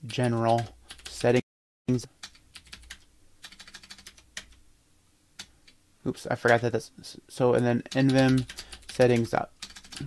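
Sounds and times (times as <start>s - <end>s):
computer keyboard typing: 0.1s - 1.4s, 2.2s - 4.6s, 7.9s - 10.0s.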